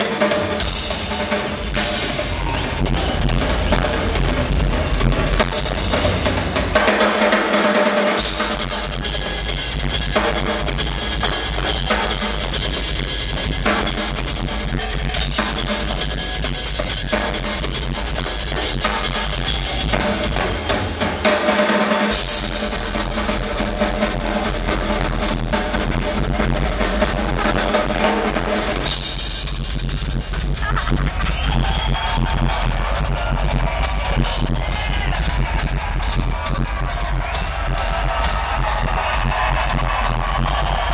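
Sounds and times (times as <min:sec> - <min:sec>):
rock drum solo: 0:00.0 - 0:40.9.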